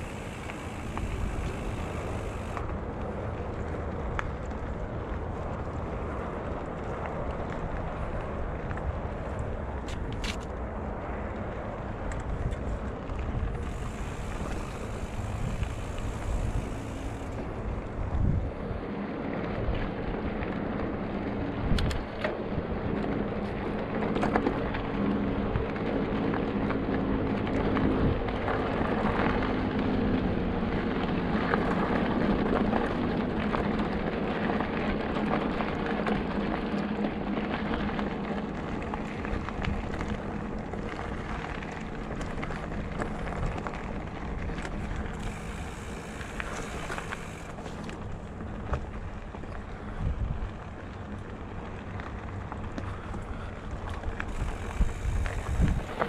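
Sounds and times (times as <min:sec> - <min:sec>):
wind on microphone: 0:00.0 - 0:10.3, 0:11.6 - 0:51.2, 0:52.5 - 0:56.0
tyres rolling on gravel: 0:00.0 - 0:56.0.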